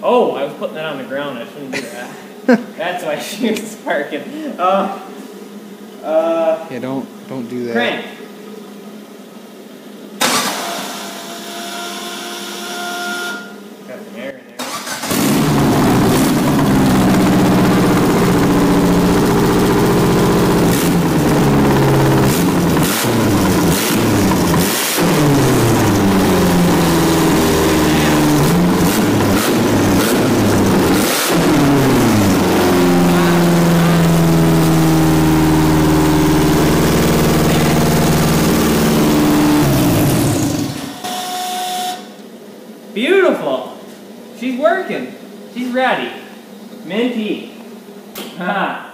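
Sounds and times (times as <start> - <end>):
engine cranking on starter: 10.2 - 11.0, 14.6 - 32.5, 35.8 - 41.0
engine running and revving: 15.1 - 41.0.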